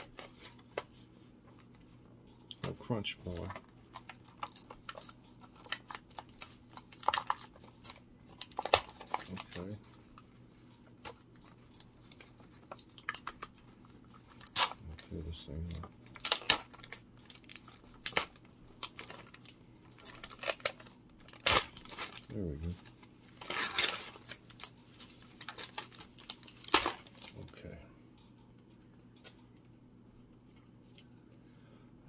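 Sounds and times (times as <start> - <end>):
plastic packaging crinkling: 2.4 - 27.6.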